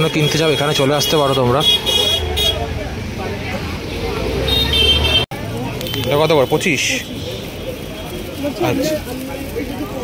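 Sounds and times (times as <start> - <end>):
vehicle horn tooting: 4.5 - 5.2.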